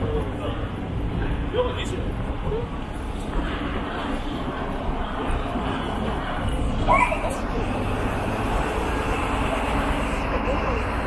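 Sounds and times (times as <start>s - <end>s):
low rumble of traffic: 0.0s - 11.0s
voices of passers-by: 0.0s - 11.0s.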